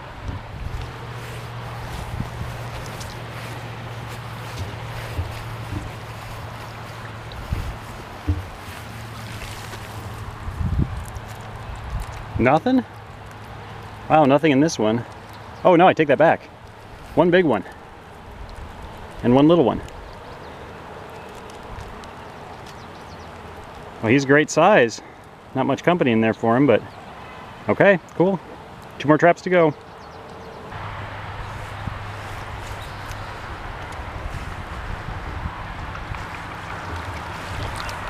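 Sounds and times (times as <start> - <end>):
outdoor background hiss: 0.0 - 38.0
water dripping and trickling: 0.2 - 15.6, 16.5 - 24.0, 31.8 - 38.0
wet line hauled out of water: 0.4 - 12.4, 35.9 - 38.0.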